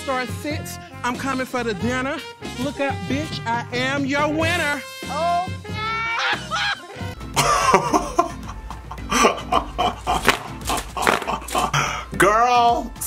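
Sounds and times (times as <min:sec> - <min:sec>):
background music: 0:00.0 - 0:13.0
excited voices: 0:05.7 - 0:07.1
laughter: 0:06.2 - 0:11.8.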